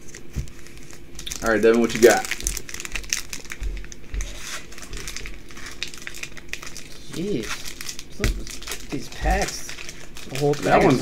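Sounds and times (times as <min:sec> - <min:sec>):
foil wrapper crinkling: 0:00.0 - 0:11.0.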